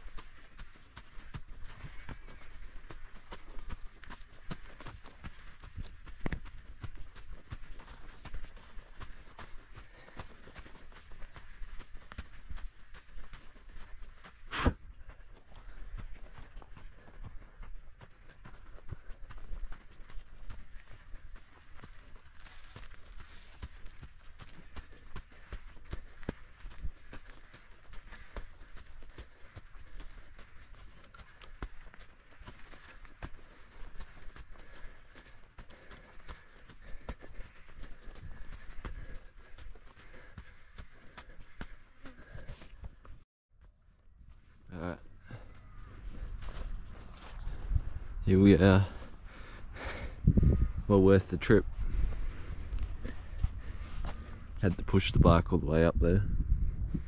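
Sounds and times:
mountain bike rattling on sand: 0:15.3 - 0:43.1.

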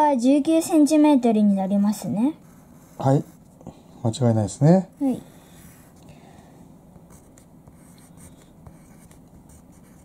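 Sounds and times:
pen scratching on paper: 0:02.2 - 0:03.4, 0:05.0 - 0:06.0, 0:07.0 - 0:10.0.

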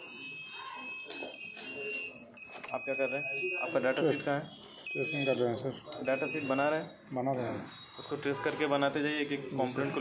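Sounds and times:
high-pitched electronic beep: 0:00.0 - 0:08.2.

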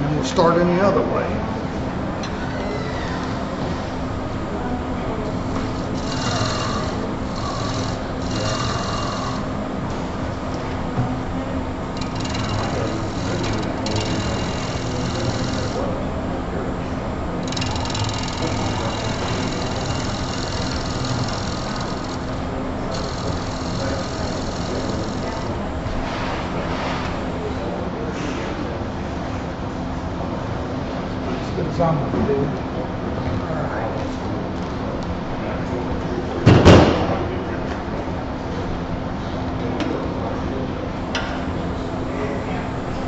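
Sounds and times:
wood lathe humming: 0:02.3 - 0:27.5
gouge hissing on spinning wood: 0:05.5 - 0:09.7, 0:11.8 - 0:16.3, 0:17.4 - 0:25.7.

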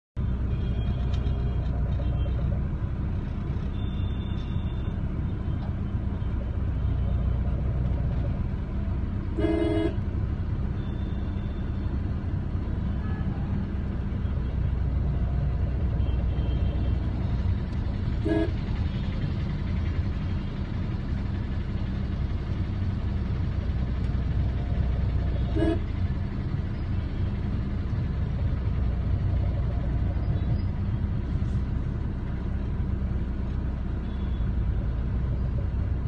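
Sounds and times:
car engine and tyres rumbling: 0:00.2 - 0:36.0
vehicle horn honk: 0:09.4 - 0:10.0, 0:18.2 - 0:18.7, 0:25.4 - 0:25.9.

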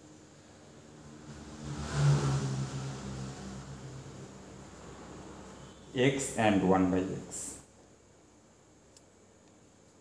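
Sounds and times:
motor vehicle passing: 0:00.5 - 0:06.0.

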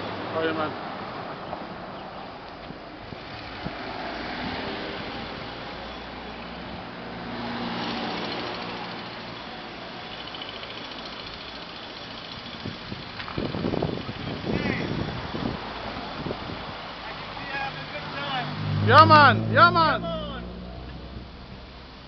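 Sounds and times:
cars driving past: 0:00.0 - 0:22.0.

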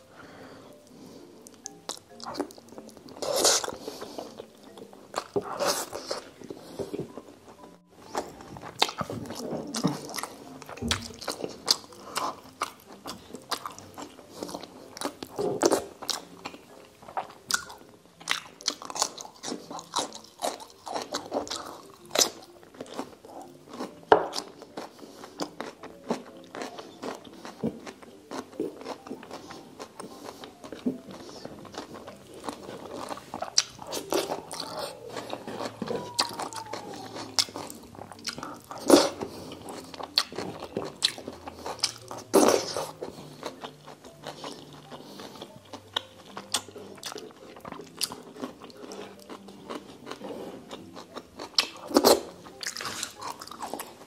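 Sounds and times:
person chewing food: 0:00.0 - 0:54.0.

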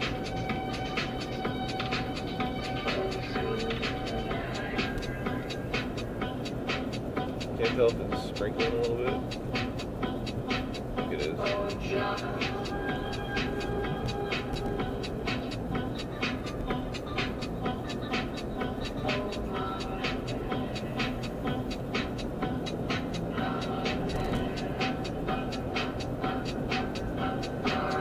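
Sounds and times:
car road and engine rumble: 0:00.0 - 0:28.0.

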